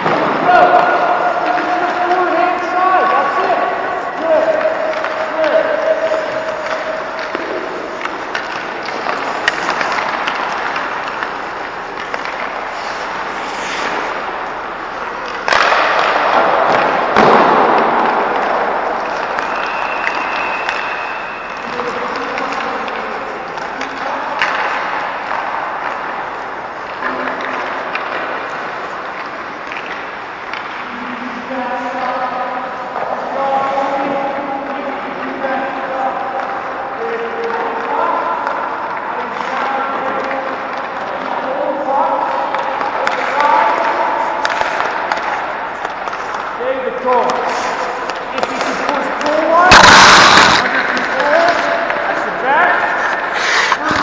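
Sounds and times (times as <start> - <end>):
sticks and pucks knocking: 4.2 - 21.0, 21.6 - 30.8, 42.4 - 46.6, 47.2 - 52.4
skate blades scraping ice: 4.9 - 16.1, 47.3 - 54.0
indistinct voices: 46.7 - 54.0.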